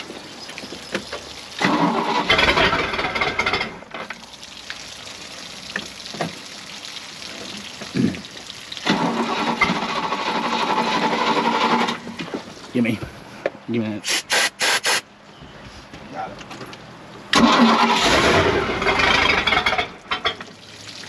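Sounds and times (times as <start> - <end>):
boat engine cranking on starter: 1.6 - 3.8, 8.8 - 12.2, 17.3 - 20.0.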